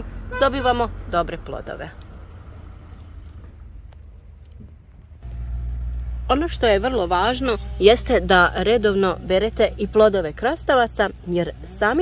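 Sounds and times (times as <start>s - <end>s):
low steady rumble: 0.0s - 12.0s.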